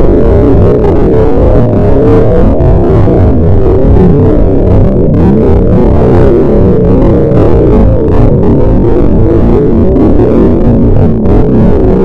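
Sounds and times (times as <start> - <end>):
harsh distorted noise music: 0.0 - 12.0.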